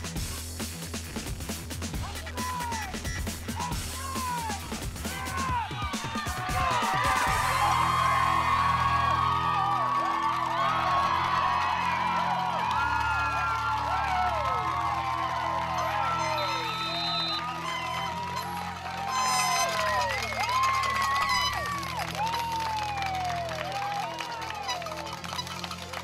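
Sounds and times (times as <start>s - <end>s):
music playing: 0.0s - 26.0s
crowd cheering and whooping: 3.6s - 26.0s.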